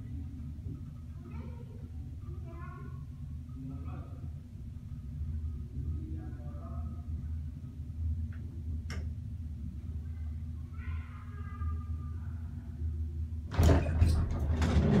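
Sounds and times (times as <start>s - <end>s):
elevator hum: 13.4s - 15.0s
elevator door rattling open: 13.5s - 15.0s.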